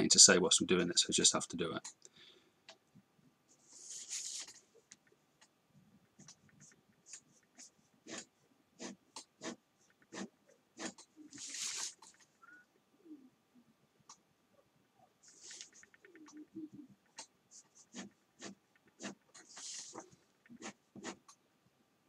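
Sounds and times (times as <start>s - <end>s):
pen scratching on paper: 6.2s - 12.2s, 17.5s - 21.3s.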